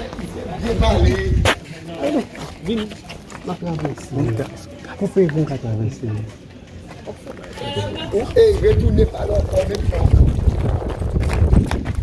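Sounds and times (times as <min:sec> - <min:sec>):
man talking: 0:00.4 - 0:06.3, 0:07.8 - 0:10.3.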